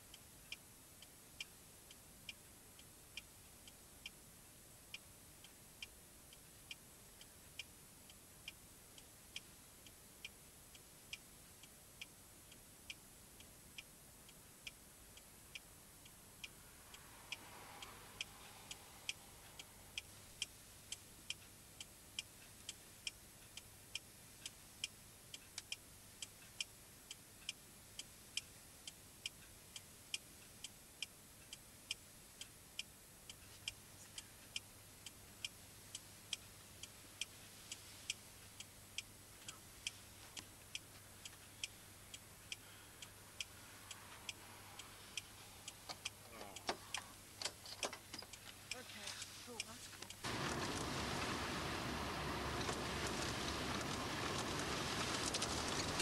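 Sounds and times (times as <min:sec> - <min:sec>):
faint regular ticking: 0:00.0 - 0:56.0
rustles and clicks: 0:45.9 - 0:56.0.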